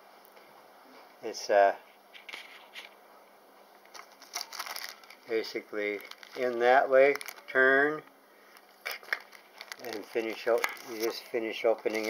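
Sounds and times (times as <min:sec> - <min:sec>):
plastic bag crinkling: 0:02.2 - 0:03.0, 0:03.9 - 0:07.8, 0:08.6 - 0:12.0.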